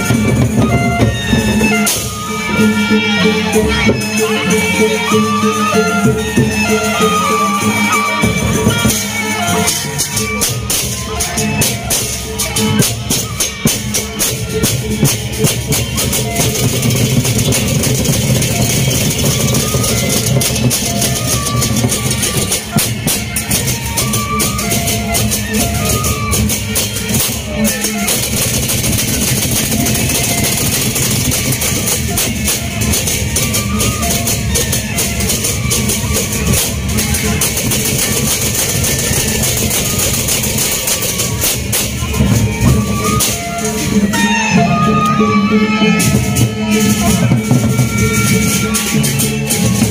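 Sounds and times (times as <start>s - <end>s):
barrel drums beating: 0.0s - 4.4s, 8.2s - 44.4s
hand cymbals clashing: 0.0s - 44.4s.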